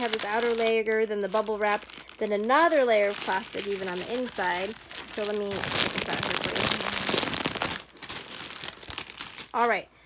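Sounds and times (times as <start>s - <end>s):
plastic packaging crinkling: 0.0s - 9.9s.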